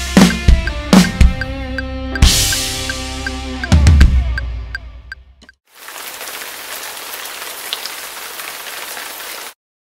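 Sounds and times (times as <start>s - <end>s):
rain-like hiss: 5.7s - 9.6s.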